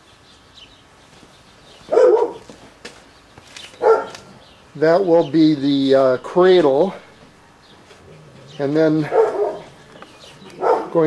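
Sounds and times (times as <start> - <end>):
dog barking: 1.9 - 2.5, 3.8 - 4.3, 9.0 - 9.8, 10.6 - 11.0.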